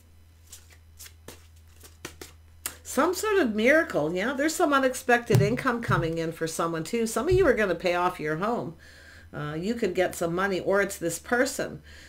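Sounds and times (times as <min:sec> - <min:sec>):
cards rustling and tapping: 0:00.5 - 0:02.4
low steady hum: 0:02.4 - 0:12.0.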